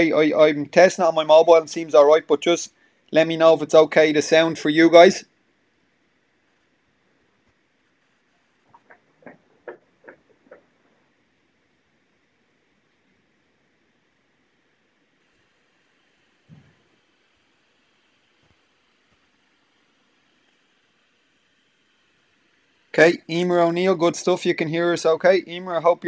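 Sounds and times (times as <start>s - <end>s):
faint hiss: 0.0s - 26.0s.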